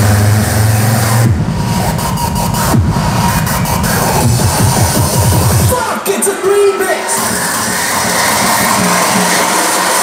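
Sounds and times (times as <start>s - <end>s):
loud rushing noise: 0.0s - 5.8s, 7.0s - 10.0s.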